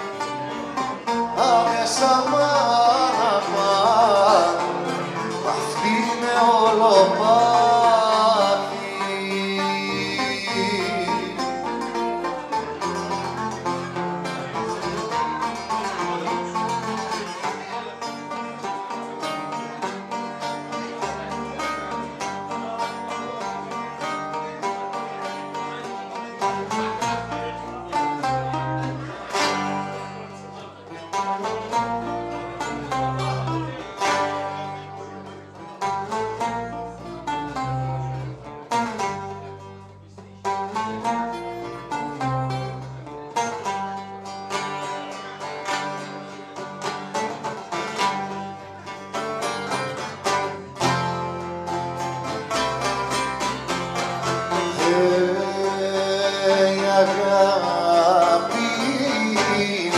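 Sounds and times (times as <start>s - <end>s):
electric bass guitar: 0.0s - 59.9s
oud plucked melody: 0.0s - 59.9s.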